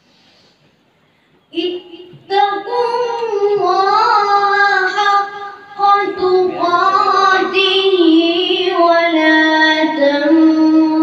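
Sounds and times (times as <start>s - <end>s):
boy reciting melodically: 1.5s - 11.0s.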